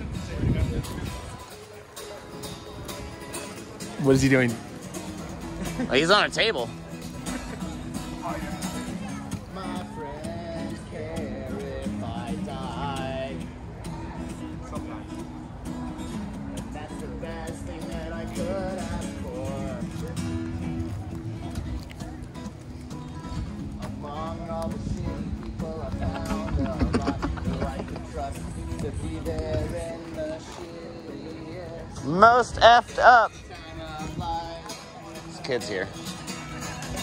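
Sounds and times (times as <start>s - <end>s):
guitar strumming chords: 0.0s - 37.0s.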